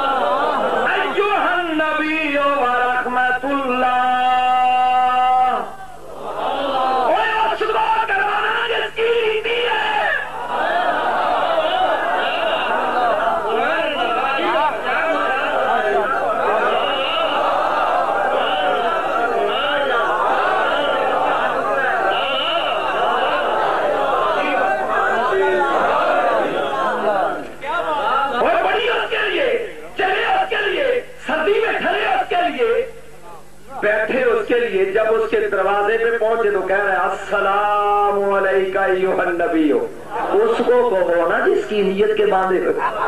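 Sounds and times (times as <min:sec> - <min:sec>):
crowd reciting together: 0:00.0 - 0:01.8, 0:04.4 - 0:07.4, 0:10.0 - 0:29.9.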